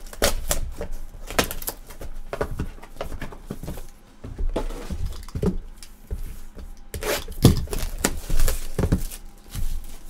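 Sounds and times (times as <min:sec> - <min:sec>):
cards and wrapping clicking and crinkling: 0:00.0 - 0:04.0, 0:06.7 - 0:10.0.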